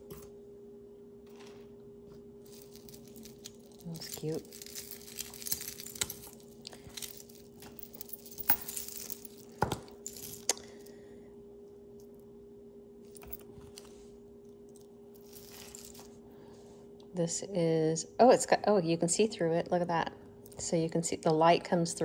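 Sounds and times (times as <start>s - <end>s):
faint steady hum: 0.0s - 22.0s
metal chains clinking: 2.5s - 10.8s, 13.1s - 13.5s, 15.2s - 16.1s.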